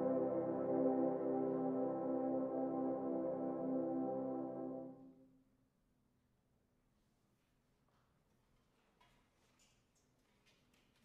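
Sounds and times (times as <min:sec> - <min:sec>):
french horns holding a chord: 0:00.0 - 0:05.2.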